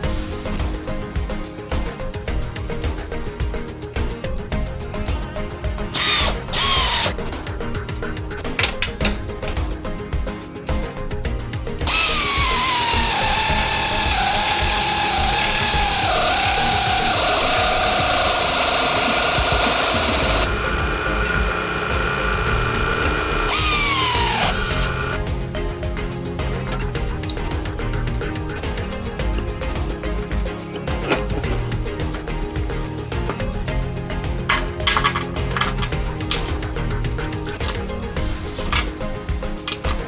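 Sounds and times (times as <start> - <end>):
background music with a beat: 0.0 - 40.0
power drill whining: 6.0 - 7.2, 11.9 - 25.2.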